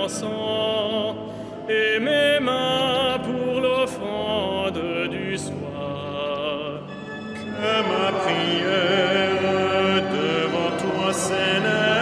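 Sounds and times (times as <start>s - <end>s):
liturgical chant singing: 0.0s - 12.0s.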